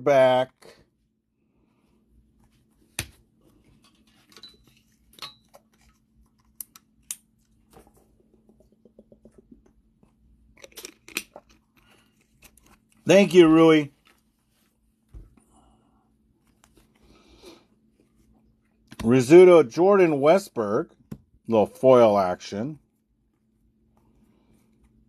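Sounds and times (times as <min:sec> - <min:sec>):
faint steady hum: 0:00.0 - 0:25.0.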